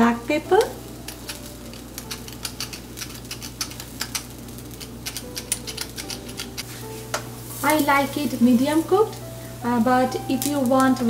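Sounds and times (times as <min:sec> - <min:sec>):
pepper mill grinding clicks: 0:01.1 - 0:06.6.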